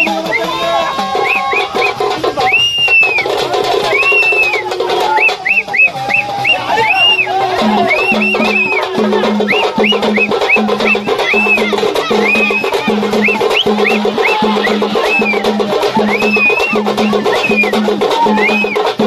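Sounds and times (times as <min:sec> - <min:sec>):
hand drums in quick rhythm: 0:00.0 - 0:19.0
whooping tones: 0:00.0 - 0:19.0.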